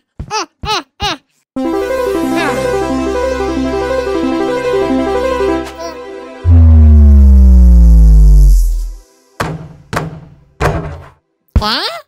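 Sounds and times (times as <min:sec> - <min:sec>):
cartoon descending tone: 0:06.4 - 0:09.0.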